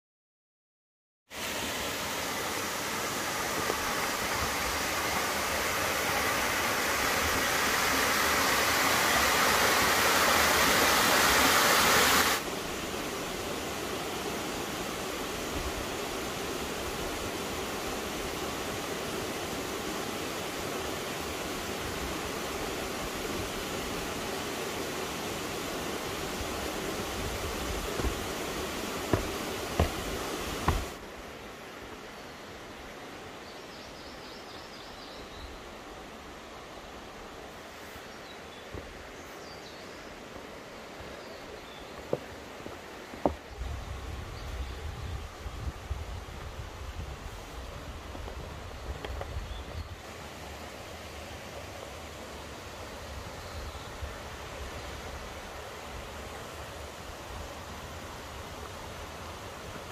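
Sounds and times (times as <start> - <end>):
mountain stream rushing: 1.3 - 59.9
footsteps on bridge deck: 27.2 - 31.0, 41.9 - 43.5.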